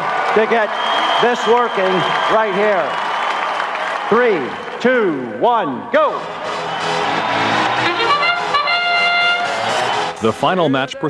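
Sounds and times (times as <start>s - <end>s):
arena crowd noise: 0.0s - 11.0s
brass trumpet call: 6.2s - 10.3s.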